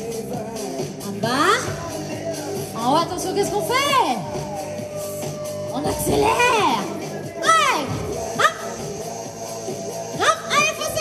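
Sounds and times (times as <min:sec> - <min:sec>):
workout music: 0:00.0 - 0:11.0
person shouting: 0:07.4 - 0:08.8.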